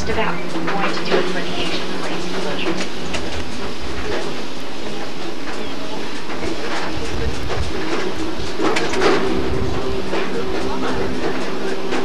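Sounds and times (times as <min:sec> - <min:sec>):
steady hum: 0:00.0 - 0:12.0
tour train rumbling and clattering: 0:00.0 - 0:12.0.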